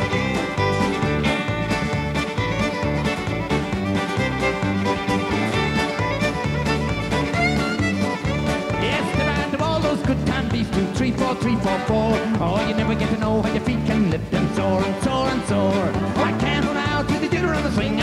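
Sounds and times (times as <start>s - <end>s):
country band playing: 0.0s - 18.0s
fiddle: 0.0s - 18.0s.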